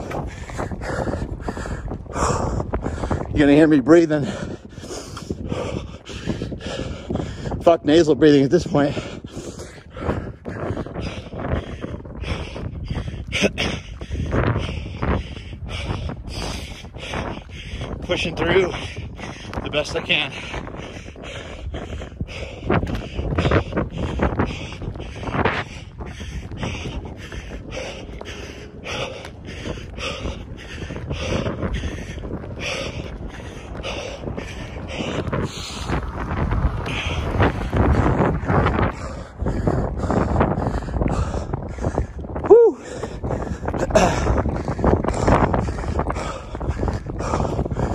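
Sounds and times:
man breathing hard through mouth: 0.0s - 3.4s, 4.2s - 7.6s, 8.8s - 47.9s
wind rumbling on microphone: 0.0s - 47.9s.

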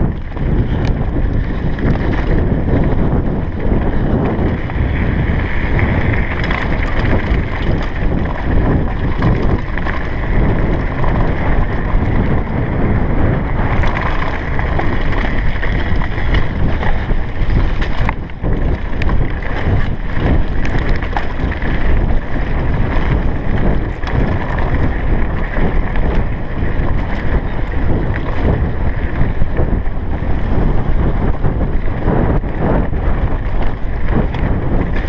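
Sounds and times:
bike rattling and clicking: 0.0s - 35.0s
bike tyres rumbling over stones: 0.0s - 35.0s
wind buffeting microphone: 0.0s - 35.0s.

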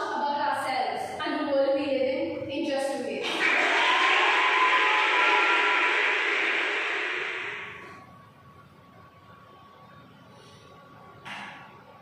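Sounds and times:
crowd cheering: 3.2s - 8.0s.

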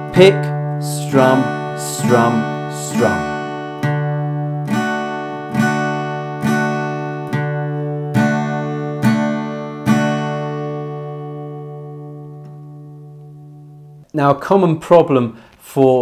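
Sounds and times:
acoustic guitar strumming: 0.0s - 14.1s.

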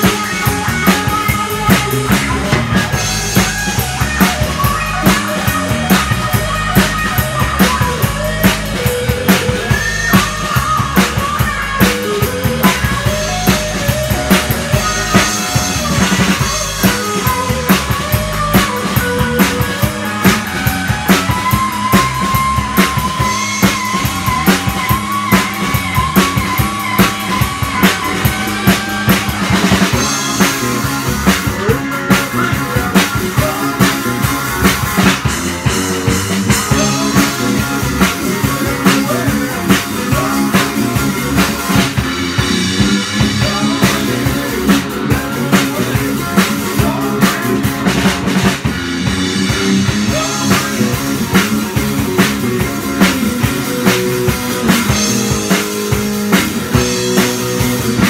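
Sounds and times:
drum kit steady beat: 0.0s - 58.0s
electric guitar lead lines: 0.0s - 58.0s.

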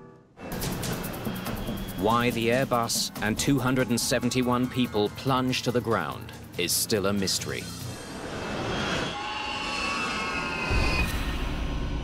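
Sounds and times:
high whine: 7.6s - 12.0s.

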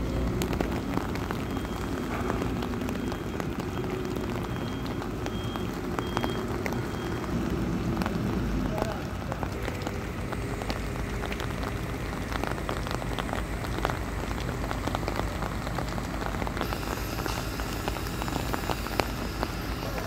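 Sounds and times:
rain pattering: 0.0s - 20.0s
low steady rumble: 7.4s - 20.0s.

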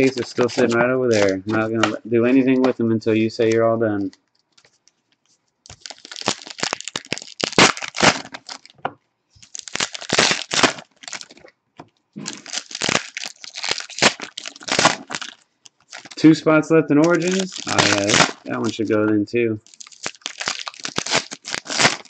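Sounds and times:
foil packs crinkling and tearing: 0.0s - 2.8s, 5.7s - 8.8s, 9.4s - 11.4s, 12.3s - 16.4s, 17.0s - 22.0s.

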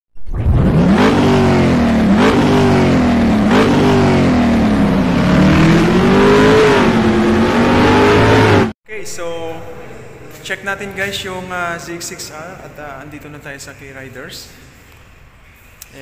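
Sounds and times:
engine revving through gears: 0.3s - 8.8s.

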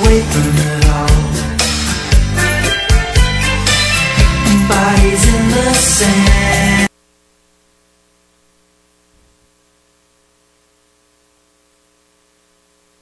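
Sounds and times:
faint electrical hum with hiss: 0.0s - 13.0s.

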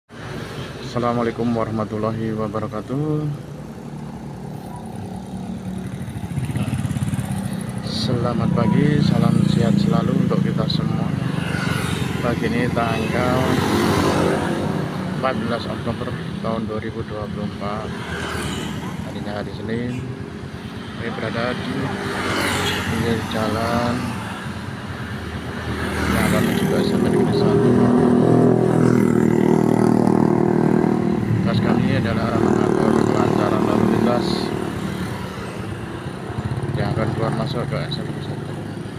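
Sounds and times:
motorcycle engines running: 0.2s - 38.9s
scooter passing close: 4.4s - 15.2s, 17.8s - 19.5s, 21.5s - 24.7s
small motorcycle engines running: 4.7s - 14.6s, 17.7s - 24.4s.

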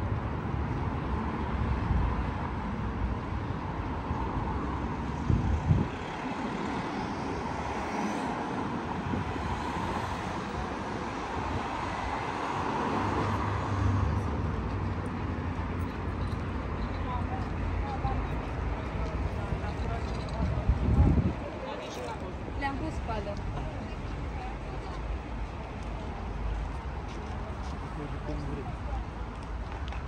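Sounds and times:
traffic hum: 0.0s - 30.0s.

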